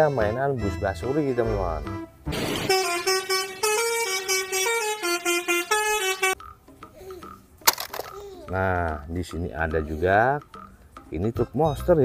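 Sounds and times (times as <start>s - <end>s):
sharp click: 7.6s - 8.2s.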